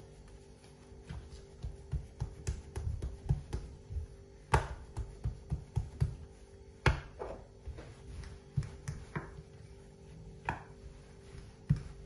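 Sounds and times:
hands patting dough: 0.0 - 12.0.

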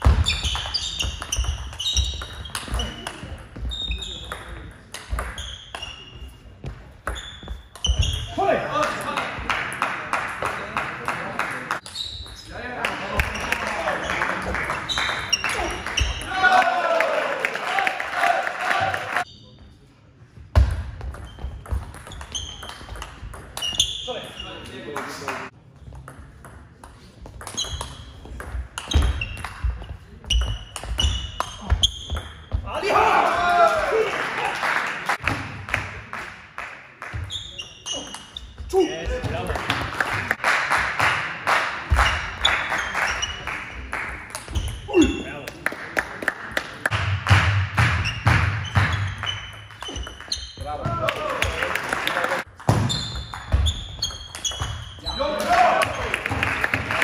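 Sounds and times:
ball bouncing on table: 0.0 - 5.9
table tennis ball hitting bats: 0.0 - 6.2, 20.6 - 24.0, 25.9 - 32.6, 44.0 - 45.0, 52.5 - 56.9
voices in a hall: 8.0 - 20.5, 32.6 - 47.3.

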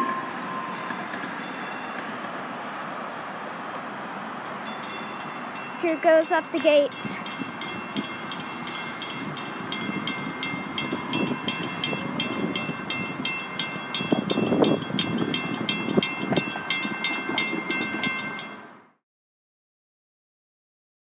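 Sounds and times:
crossing warning bell ringing: 0.0 - 2.7, 4.4 - 19.0.

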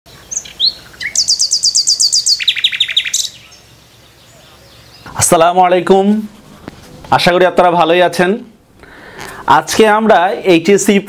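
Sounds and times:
bird chirps and trill: 0.1 - 5.4.

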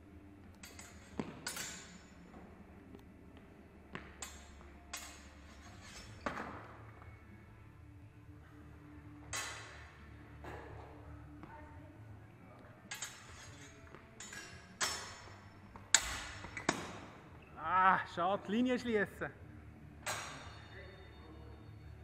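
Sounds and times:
fencing blades clashing: 0.4 - 2.3, 4.0 - 6.6, 9.3 - 10.8, 12.8 - 17.2, 20.0 - 20.7.

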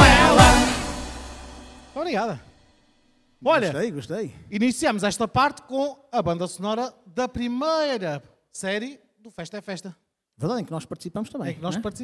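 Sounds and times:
person singing into a microphone: 0.0 - 0.8
live band closing chord: 0.0 - 2.4.

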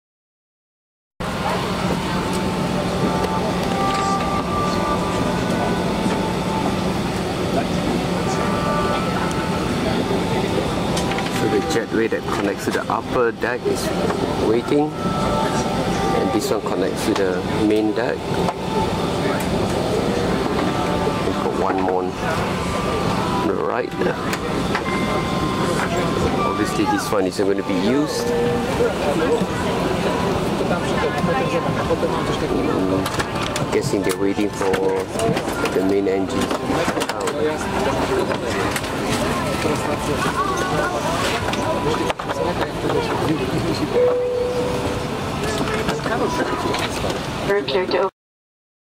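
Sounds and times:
airliner cabin hum: 1.2 - 48.1
passengers' voices: 1.2 - 48.1.

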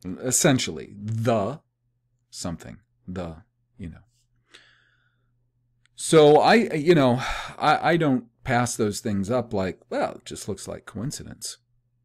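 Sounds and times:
man breathing: 4.3 - 5.5, 7.2 - 7.6.

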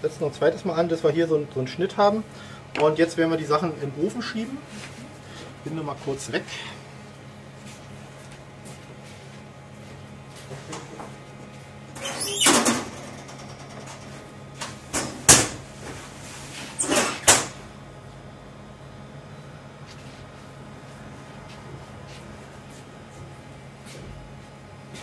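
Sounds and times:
steady low hum: 0.0 - 25.0
oven door banging: 14.9 - 15.6.

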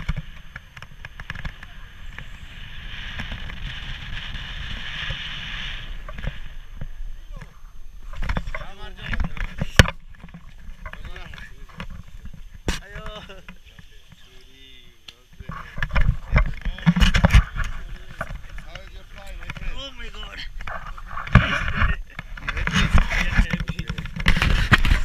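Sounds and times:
rumbling burst on microphone: 0.0 - 14.3, 15.4 - 25.0
voices talking: 1.4 - 2.6, 6.6 - 25.0.

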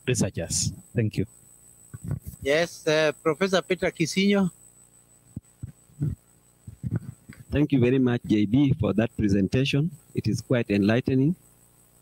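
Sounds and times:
faint steady hum: 0.0 - 12.0
microphone handling thumps: 0.1 - 1.0, 1.9 - 2.5, 5.3 - 9.1.

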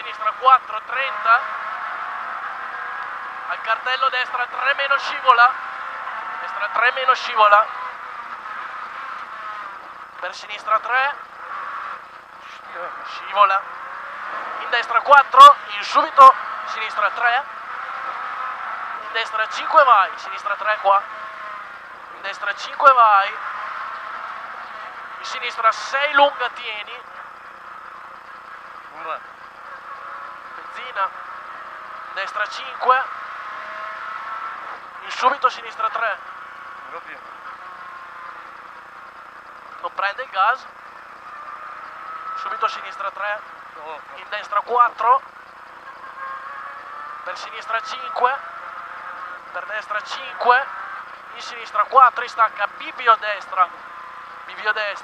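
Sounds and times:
car engine at speed: 0.0 - 55.0
road noise inside car: 0.0 - 55.0.

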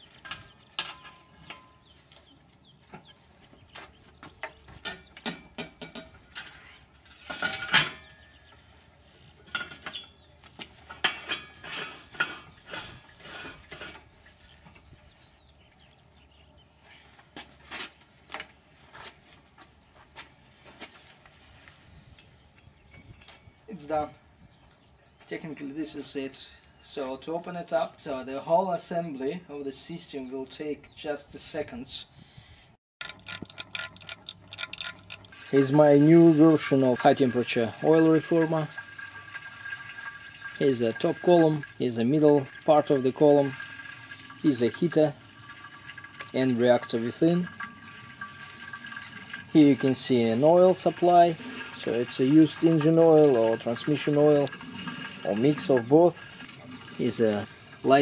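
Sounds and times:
metal parts clinking and clanking: 7.3 - 8.2, 33.0 - 35.5
rapid irregular clicking: 33.0 - 35.5.

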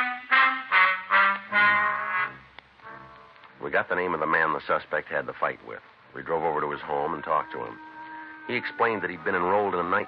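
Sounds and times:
low brass: 0.0 - 3.4, 6.7 - 10.0
trumpets playing punched notes: 0.0 - 3.4, 7.2 - 10.0.

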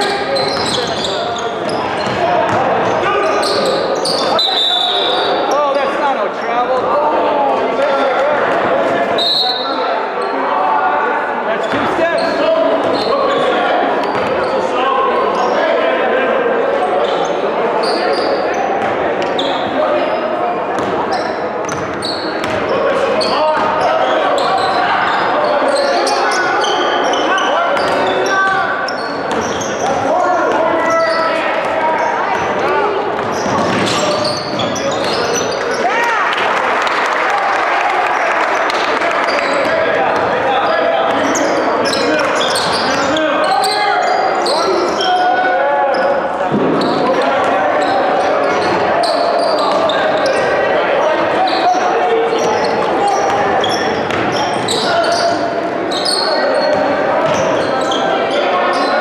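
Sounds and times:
voices chattering in a gym: 0.0 - 59.0
basketballs bouncing on wooden floor: 1.6 - 2.7, 21.6 - 22.7, 33.1 - 35.2, 53.3 - 54.4.

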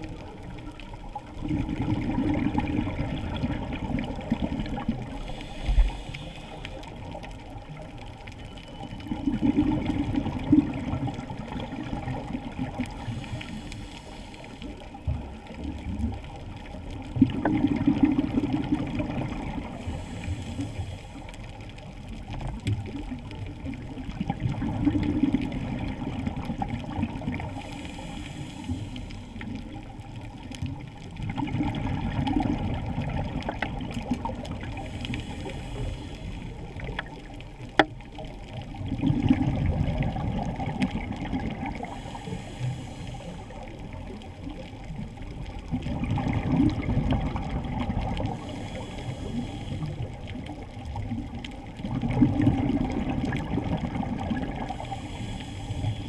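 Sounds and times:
exhaled bubbles rushing: 0.0 - 6.0, 9.0 - 13.6, 14.7 - 20.2, 22.1 - 27.8, 30.6 - 56.0
regulator inhale hiss: 4.7 - 7.2, 12.8 - 15.0, 19.6 - 21.6, 27.4 - 29.9, 34.6 - 37.0, 41.8 - 44.6, 48.2 - 50.6, 54.6 - 56.0.

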